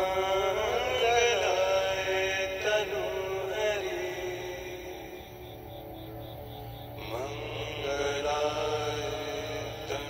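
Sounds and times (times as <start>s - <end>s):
low drone: 0.0s - 10.0s
voice chanting: 0.0s - 10.0s.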